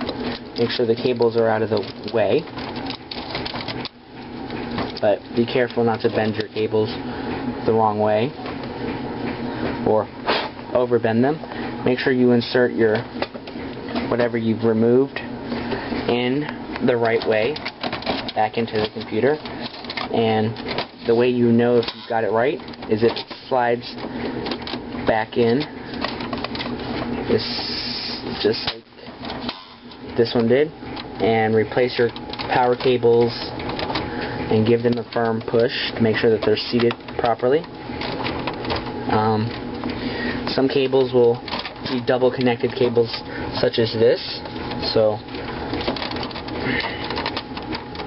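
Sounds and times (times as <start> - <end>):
cable connectors clicking and rustling: 0.0 - 8.8, 15.1 - 27.4, 28.3 - 48.0.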